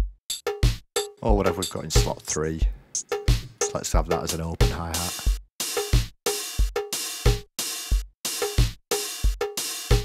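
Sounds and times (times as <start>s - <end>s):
drum machine kick: 0.0s - 10.0s
drum machine snare: 0.0s - 10.0s.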